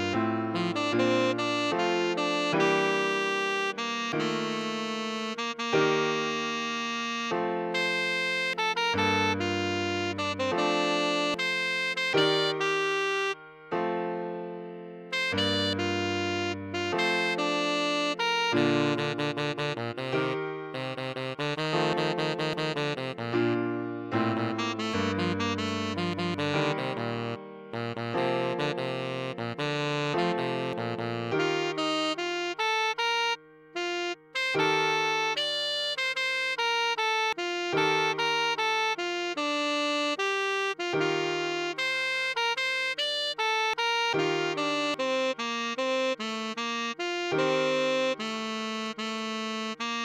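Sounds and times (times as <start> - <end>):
piano chords: 0.0 - 35.9
tenor saxophone melody: 0.0 - 50.0.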